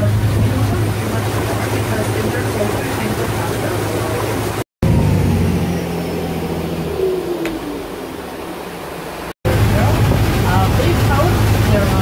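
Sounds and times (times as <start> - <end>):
boat engine low hum: 0.0 - 12.0.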